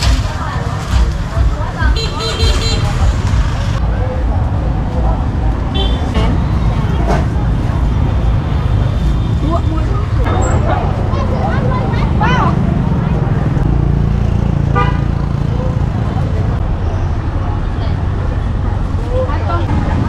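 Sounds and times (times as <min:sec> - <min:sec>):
people talking: 0:00.0 - 0:20.0
traffic rumble: 0:00.0 - 0:20.0
car horn honk: 0:14.8 - 0:15.1.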